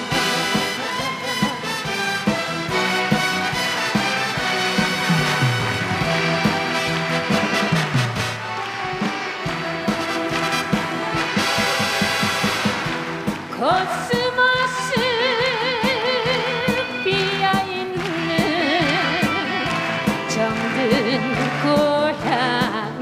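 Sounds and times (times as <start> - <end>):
orchestra brass playing: 0.0 - 13.8
steady drum beat: 0.0 - 22.7
low sliding notes: 4.6 - 13.6.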